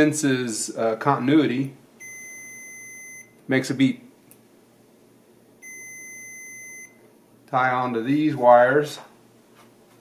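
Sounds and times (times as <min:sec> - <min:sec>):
multimeter continuity beep: 0:02.0 - 0:03.4, 0:05.6 - 0:07.1.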